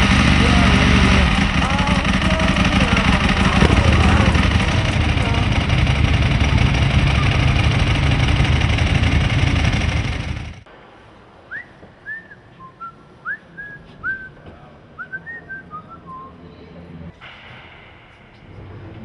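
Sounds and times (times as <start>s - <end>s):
loud engine running: 0.0s - 10.7s
person whistling: 11.5s - 14.4s.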